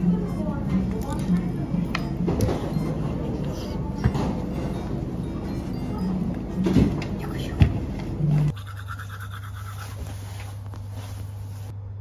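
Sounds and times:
toothbrush scrubbing teeth: 8.5 - 10.0.

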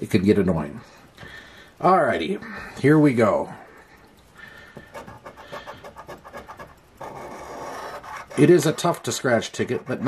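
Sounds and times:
coin scratching lottery ticket: 4.9 - 10.0.

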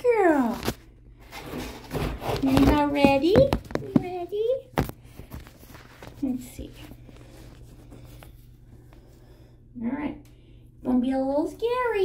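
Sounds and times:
low steady hum: 0.0 - 12.0
faint rustling: 1.2 - 9.4.

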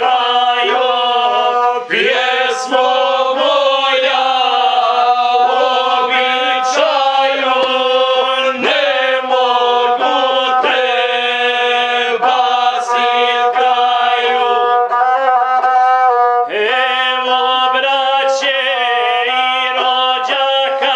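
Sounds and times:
men singing folk song in harmony: 0.0 - 15.1, 16.5 - 20.9
bowed folk fiddle: 0.0 - 20.9.

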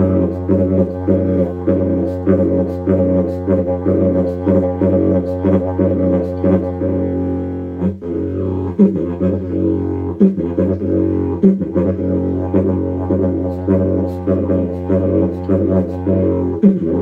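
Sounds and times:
didgeridoo drone: 0.0 - 17.0.

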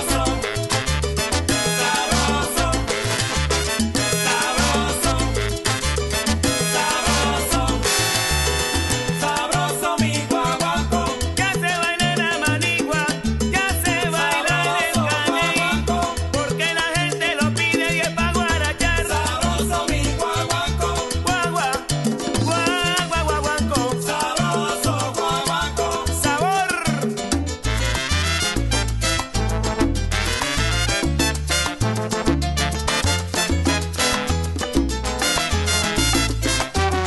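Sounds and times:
salsa band playing: 0.0 - 37.0.

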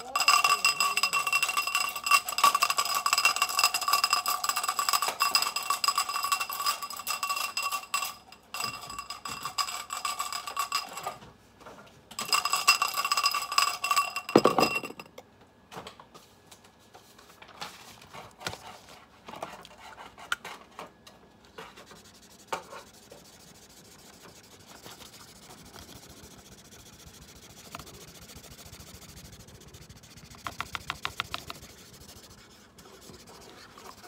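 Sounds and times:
pens rattling in a glass: 0.0 - 11.2, 12.1 - 15.1.

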